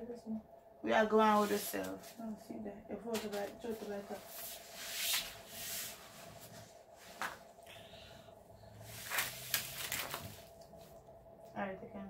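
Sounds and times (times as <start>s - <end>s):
paper rustling and scraping: 8.9s - 10.6s.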